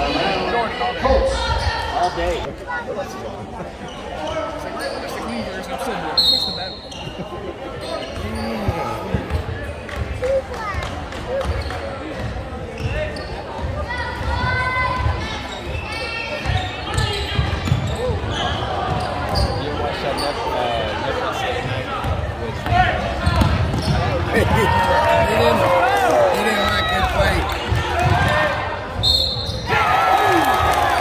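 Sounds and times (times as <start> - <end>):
spectators talking: 0.0 - 31.0.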